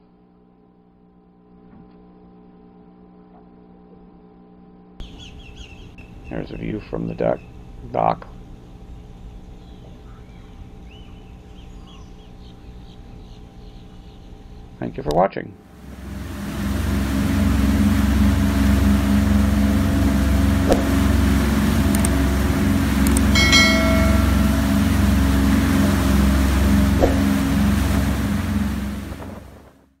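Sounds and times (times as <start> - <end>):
boat engines rumbling: 15.6 - 29.9
rush of boat wake: 15.7 - 29.8
short bright chime: 20.9 - 28.8.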